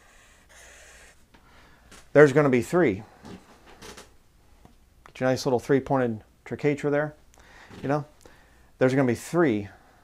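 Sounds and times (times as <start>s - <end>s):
marker scratching on paper: 0.0s - 1.2s
low room hum: 0.0s - 10.0s.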